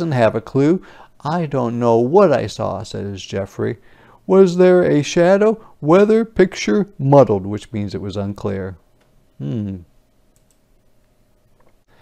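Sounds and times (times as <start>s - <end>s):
faint clicks: 10.3s - 11.8s.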